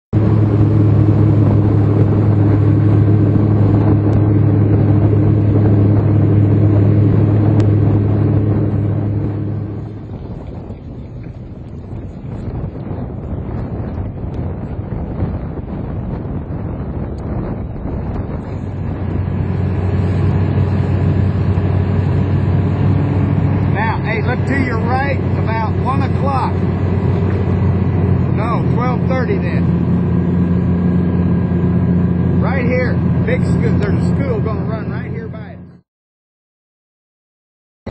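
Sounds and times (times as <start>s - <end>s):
outboard motor running: 0.1s - 35.8s
water noise: 0.1s - 35.8s
wind: 0.1s - 35.8s.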